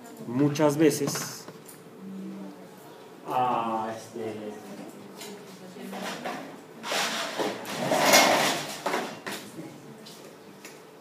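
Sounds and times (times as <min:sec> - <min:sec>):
projection screen rolling up rattle: 0:07.0 - 0:09.0.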